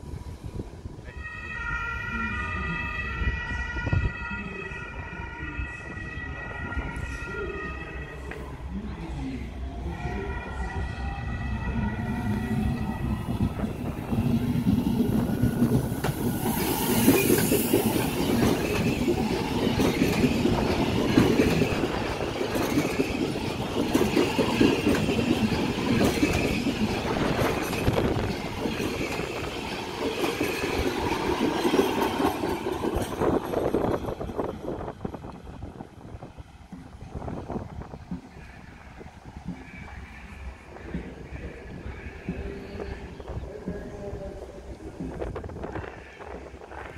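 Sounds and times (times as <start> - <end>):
train electric whine: 0.0 - 46.9
train wheel and rail noise: 0.0 - 46.9.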